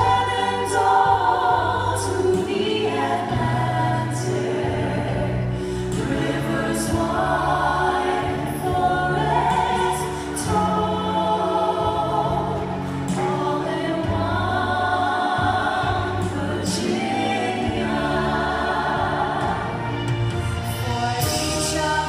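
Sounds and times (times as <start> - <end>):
group of voices singing: 0.0 - 22.0
instrumental backing music: 0.0 - 22.0.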